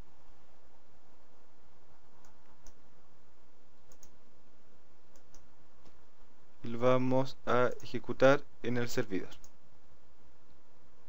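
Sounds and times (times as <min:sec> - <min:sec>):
faint microphone hiss: 0:00.0 - 0:11.0
computer mouse clicks: 0:02.2 - 0:02.8, 0:03.9 - 0:04.2, 0:05.1 - 0:06.0.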